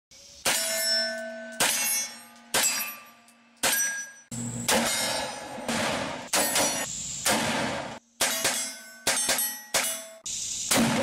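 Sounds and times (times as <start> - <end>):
steel targets clanging: 0.4 - 11.0
gunshots: 4.7 - 10.0, 10.7 - 11.0.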